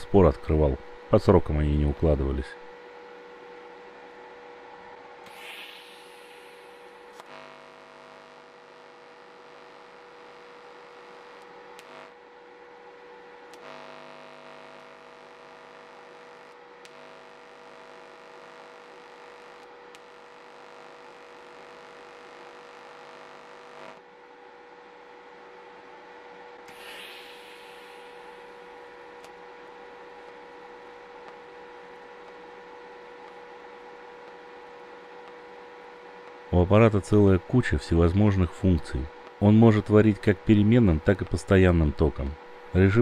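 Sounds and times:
welding arc electric hum: 0.0s - 24.1s, 26.6s - 43.0s
constant whine: 0.0s - 43.0s
short hiss: 26.7s - 28.5s.

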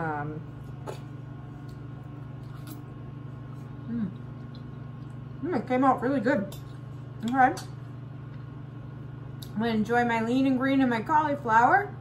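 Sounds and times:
microwave oven humming: 0.0s - 12.0s
faint chewing: 0.6s - 5.4s.

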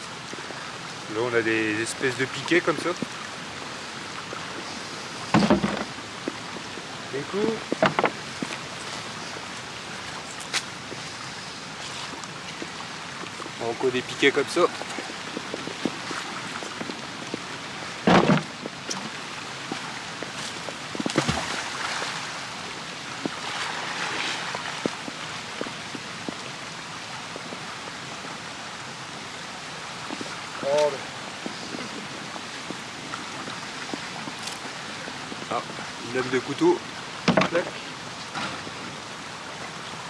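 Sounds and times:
rain falling: 0.0s - 40.0s
river rushing: 0.0s - 40.0s
heavy thump: 5.3s - 5.9s, 18.0s - 18.5s.

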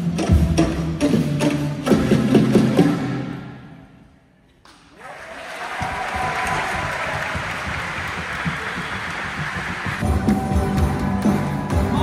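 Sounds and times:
large crowd applauding: 4.7s - 12.0s.

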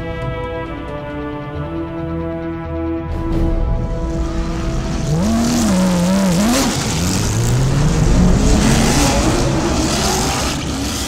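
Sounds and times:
racing engine revving: 3.9s - 11.0s.

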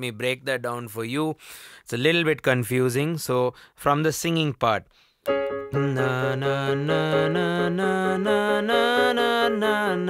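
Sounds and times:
man singing held vowels: 5.5s - 10.0s.

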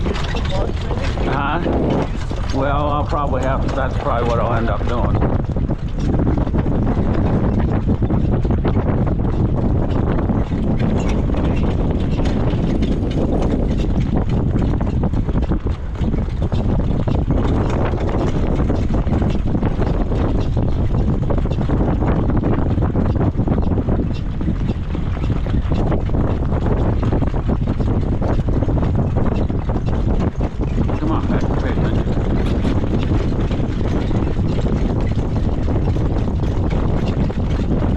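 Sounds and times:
cart wheels rumbling: 0.0s - 37.9s
horse hoofbeats on dirt: 0.0s - 37.9s
wind buffeting microphone: 0.0s - 37.9s.

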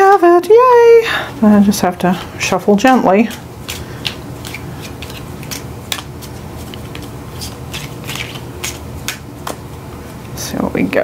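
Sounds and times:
cards being shuffled: 2.8s - 9.7s.

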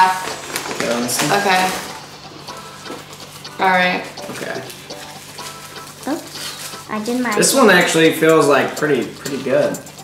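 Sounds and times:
foil wrappers crinkling: 0.0s - 2.0s, 4.3s - 7.2s.

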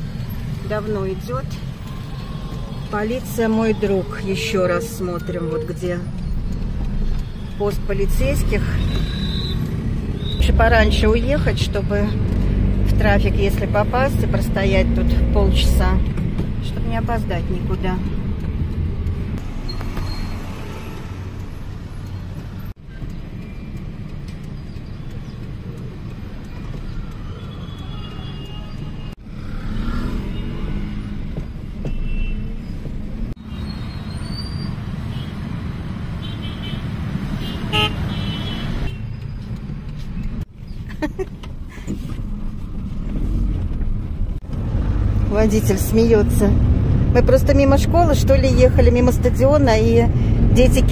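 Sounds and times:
car engine and road rumble: 0.0s - 50.9s
car horn toots: 37.4s - 39.0s.

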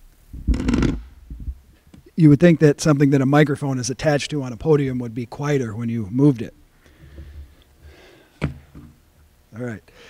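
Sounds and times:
microphone handling noise: 0.3s - 2.1s.

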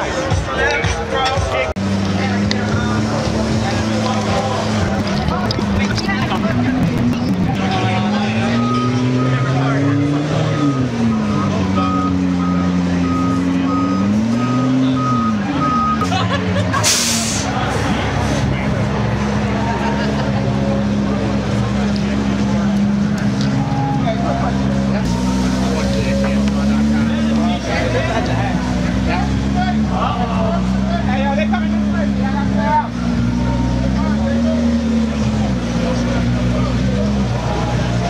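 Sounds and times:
crowd chatter: 0.0s - 38.0s.

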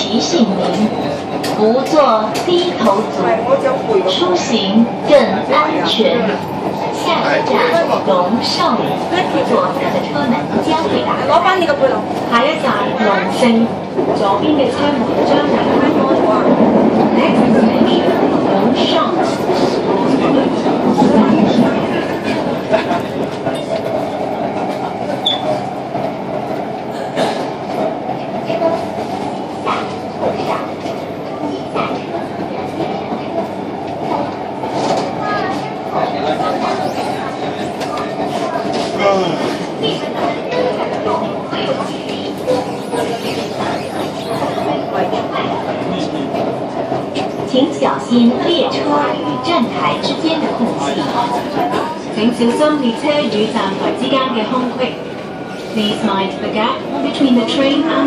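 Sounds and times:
steady train hum: 0.0s - 58.0s
train wheels on rail: 0.0s - 58.0s.

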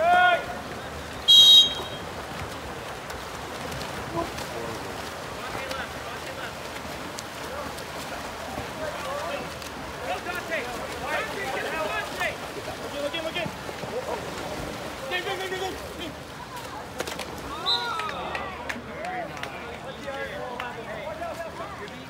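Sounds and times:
water splashing: 0.0s - 22.0s
people shouting: 17.5s - 18.6s.

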